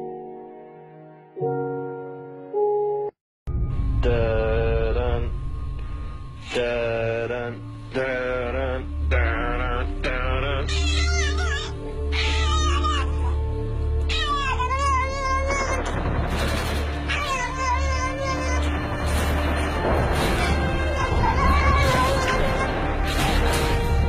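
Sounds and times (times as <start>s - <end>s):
cat meowing: 14.1s - 15.1s.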